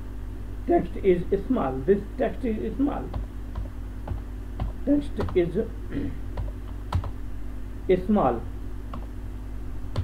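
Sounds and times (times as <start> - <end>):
steady low hum: 0.0 - 10.0
keyboard keystrokes: 6.4 - 7.1.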